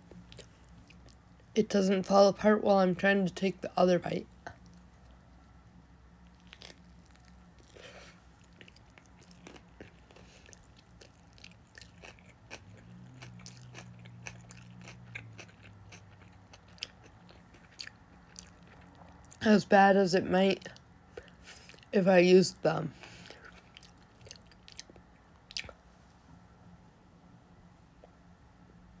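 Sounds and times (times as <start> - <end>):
wet chewing mouth clicks: 8.4 - 19.4, 23.2 - 25.8.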